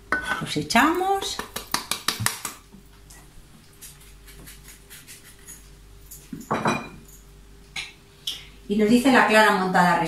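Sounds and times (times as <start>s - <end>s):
dishware clatter: 6.4s - 7.1s.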